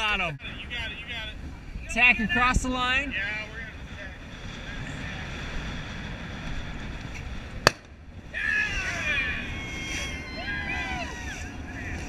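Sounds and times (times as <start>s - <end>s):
voices: 0.0s - 5.8s, 8.2s - 12.0s
wind rushing over microphone: 0.0s - 12.0s.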